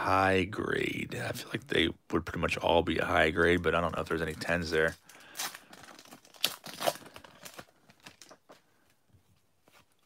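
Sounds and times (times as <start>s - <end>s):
wrapper tearing and crinkling: 5.0s - 8.6s.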